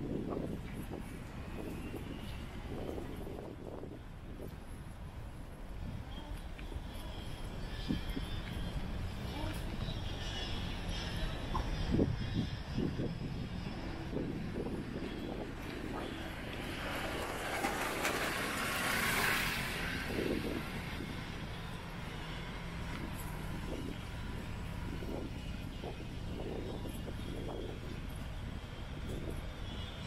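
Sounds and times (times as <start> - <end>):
low rumble of traffic: 0.0 - 30.0
vehicle passing: 7.0 - 25.6.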